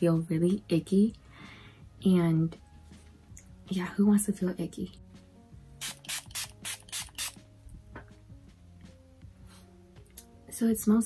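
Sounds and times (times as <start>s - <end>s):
spray bottle hissing: 5.8s - 7.4s.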